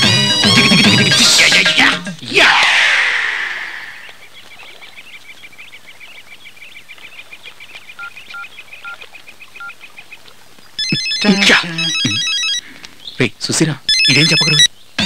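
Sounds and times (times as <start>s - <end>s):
mobile phone ringtone: 0.0s - 1.5s, 10.8s - 12.6s, 13.9s - 14.7s
small birds chirping: 3.7s - 15.0s
man speaking: 10.8s - 12.6s, 13.2s - 14.7s.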